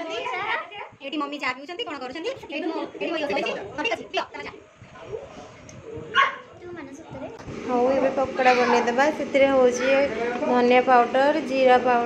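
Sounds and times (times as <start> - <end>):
puppy yip: 6.2 - 6.4.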